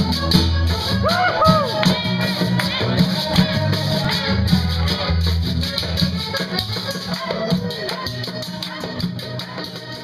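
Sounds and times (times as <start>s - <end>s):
button accordion: 0.0s - 10.0s.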